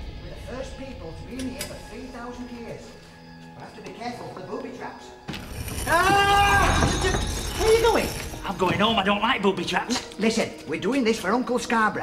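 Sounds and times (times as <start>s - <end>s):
drawn-out pitched wail: 5.7s - 7.1s.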